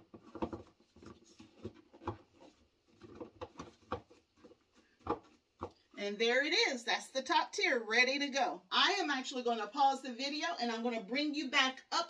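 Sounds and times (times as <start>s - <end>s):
hard plastic parts knocking: 0.0s - 5.8s.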